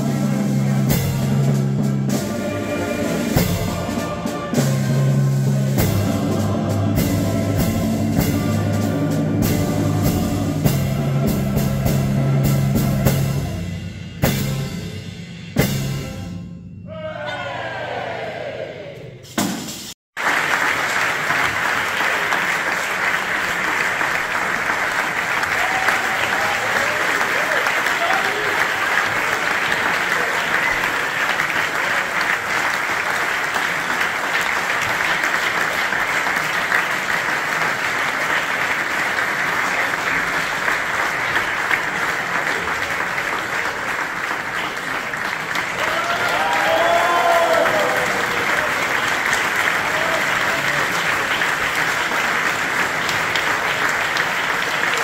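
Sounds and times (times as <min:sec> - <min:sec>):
audience applauding: 0:20.2 - 0:55.0.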